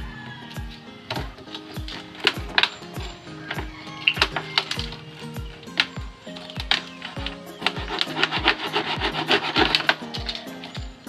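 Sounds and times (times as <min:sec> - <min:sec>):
background music with steady beat: 0:00.0 - 0:11.0
knife sawing plastic bottle: 0:08.0 - 0:10.1.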